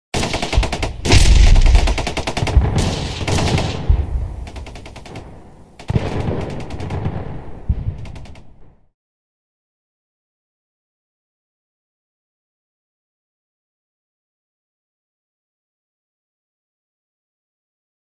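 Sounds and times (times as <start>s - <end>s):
machine-gun fire: 0.2s - 8.6s.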